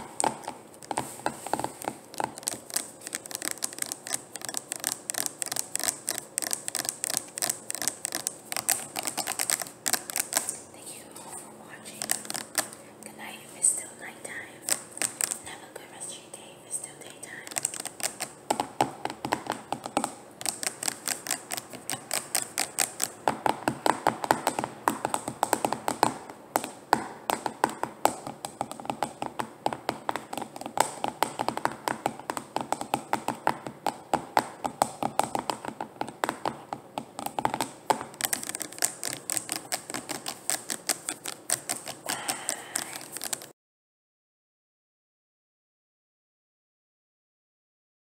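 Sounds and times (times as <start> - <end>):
fingernails tapping on bottles: 0.0 - 10.6, 17.5 - 43.5.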